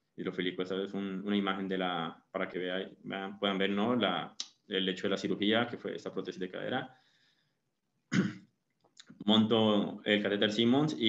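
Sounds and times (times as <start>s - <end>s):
man clearing his throat: 8.1s - 8.4s.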